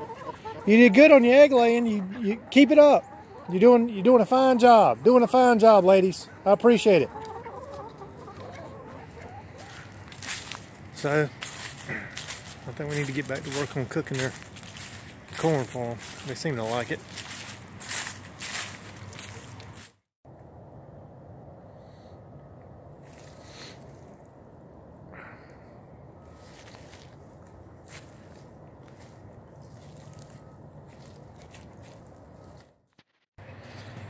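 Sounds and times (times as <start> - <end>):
outdoor background noise: 0.0 - 34.0
footsteps on dry leaves: 9.5 - 20.1, 23.0 - 24.1, 26.3 - 32.8.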